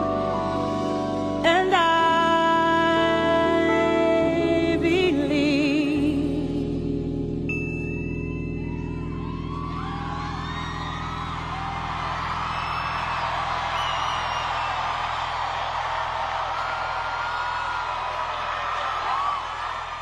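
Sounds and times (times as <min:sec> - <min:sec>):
concert crowd cheering and whistling: 0:08.1 - 0:20.0.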